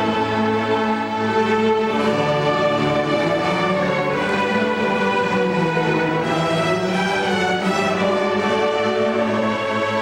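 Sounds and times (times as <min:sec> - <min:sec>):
string orchestra playing: 0:00.0 - 0:10.0.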